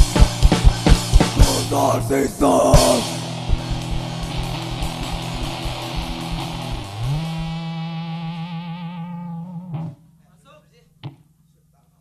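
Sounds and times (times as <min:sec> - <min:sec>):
distorted electric guitar note: 0:00.0 - 0:10.2
muted guitar thump: 0:03.1 - 0:07.6.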